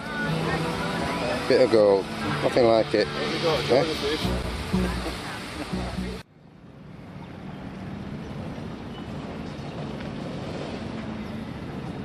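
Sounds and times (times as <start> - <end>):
water rushing: 0.0 - 6.2
wind: 0.0 - 12.0.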